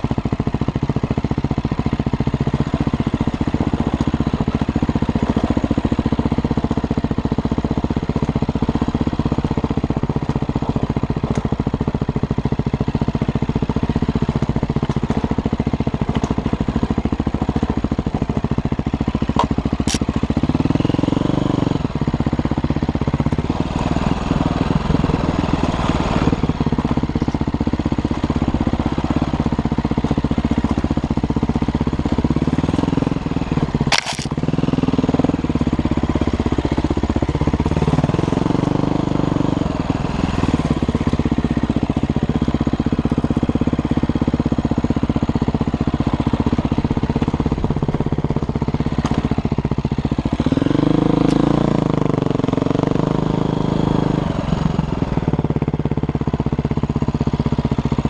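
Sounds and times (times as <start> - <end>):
dirt bike engine revving: 32.1 - 41.4, 50.3 - 55.0.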